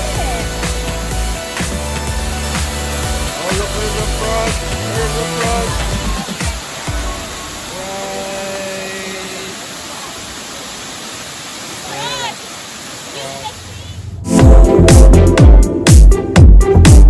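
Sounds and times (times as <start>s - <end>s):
rushing creek: 0.0s - 14.2s.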